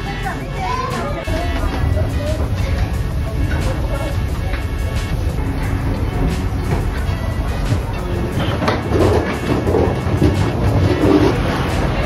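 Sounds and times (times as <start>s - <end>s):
ship engines rumbling: 0.2s - 12.0s.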